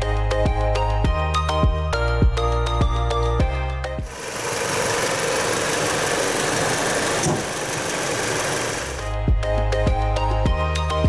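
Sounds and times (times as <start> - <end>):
background music: 0.0 - 4.1, 8.8 - 11.0
car engine idling: 4.0 - 9.1.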